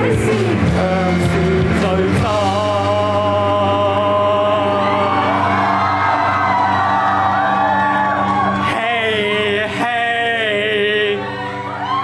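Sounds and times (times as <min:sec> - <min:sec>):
drums: 0:00.0 - 0:10.2
bass guitar: 0:00.0 - 0:12.0.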